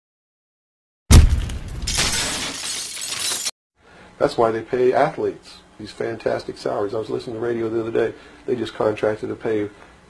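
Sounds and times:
loud hit with deep boom: 1.1s - 1.9s.

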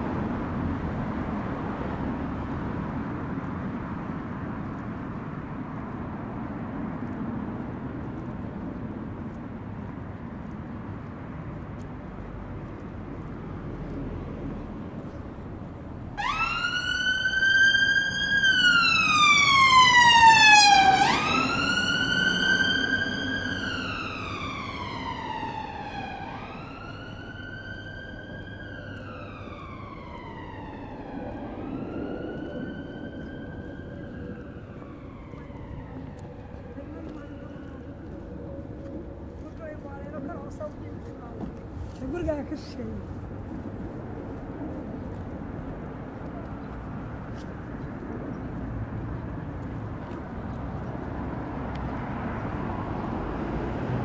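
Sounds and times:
street traffic: 0.0s - 54.0s
emergency vehicle siren wailing: 13.5s - 41.9s.

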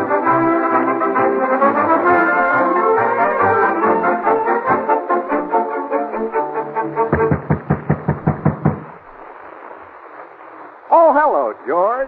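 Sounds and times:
rapid knocking on door: 7.1s - 9.0s.

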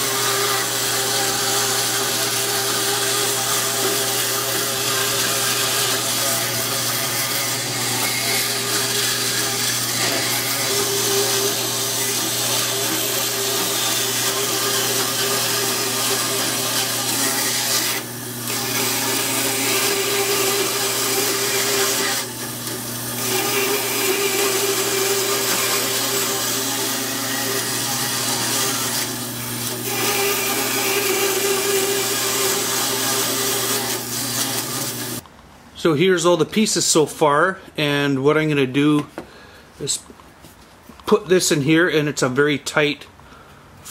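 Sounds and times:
bandsaw cutting wood: 0.0s - 35.2s.

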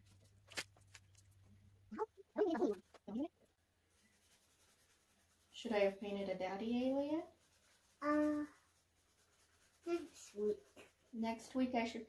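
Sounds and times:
people speaking: 2.0s - 3.3s, 5.5s - 7.3s, 8.0s - 8.5s, 9.9s - 12.0s.

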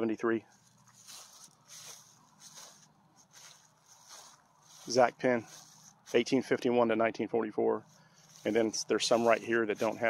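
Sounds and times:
faint soft rustling: 0.4s - 6.6s, 7.8s - 10.0s.

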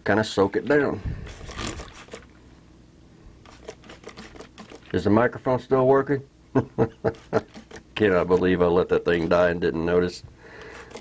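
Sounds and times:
spray bottle squirting: 1.3s - 2.3s, 3.4s - 4.9s, 7.2s - 7.8s.

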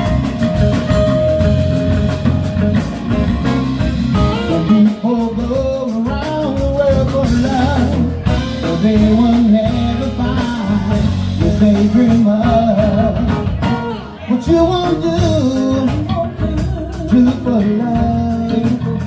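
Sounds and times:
live band playing: 0.0s - 19.0s
person singing: 4.2s - 19.0s.

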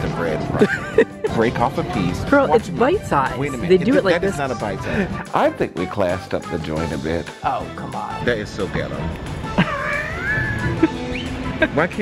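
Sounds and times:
background music: 0.0s - 12.0s
high-pitched wavering cry: 9.6s - 11.3s.

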